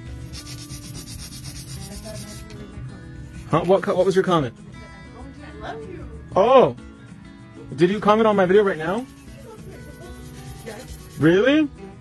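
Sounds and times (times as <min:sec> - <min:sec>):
nail file rasping: 0:00.1 - 0:02.6, 0:08.4 - 0:11.5.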